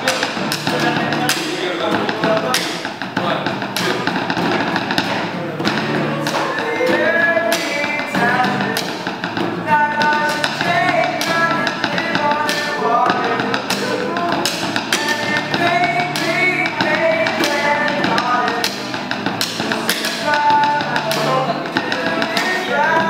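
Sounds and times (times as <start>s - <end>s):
acoustic guitar: 0.0s - 23.0s
drumsticks tapping on hard case: 0.0s - 23.0s
people singing along: 5.0s - 23.0s.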